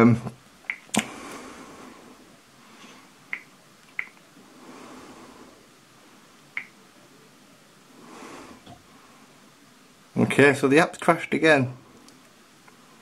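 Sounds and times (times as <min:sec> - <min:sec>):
faint room hiss: 0:00.0 - 0:13.0
finger tapping touchscreen clicks: 0:03.3 - 0:04.2.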